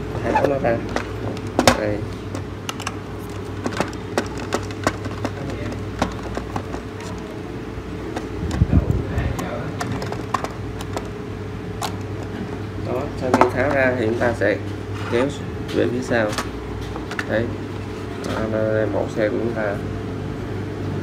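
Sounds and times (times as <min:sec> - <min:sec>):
handling rumble: 0:00.0 - 0:19.6
steady background hum: 0:00.0 - 0:21.0.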